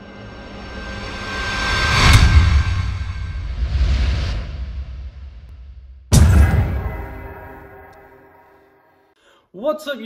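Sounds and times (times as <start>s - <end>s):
whoosh: 1.5s - 8.5s
sharp hit with deep boom: 2.0s - 8.6s
low rumble: 2.1s - 8.1s.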